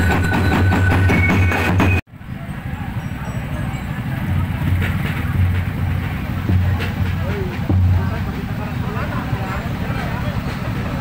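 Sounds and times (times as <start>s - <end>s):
motorcycle engines idling: 0.0s - 11.0s
people's voices: 2.1s - 11.0s.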